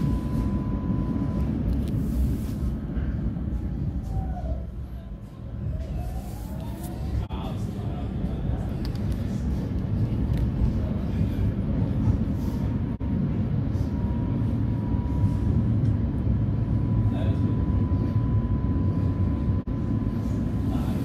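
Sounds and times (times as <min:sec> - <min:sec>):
thin steady whine: 0:00.0 - 0:21.0.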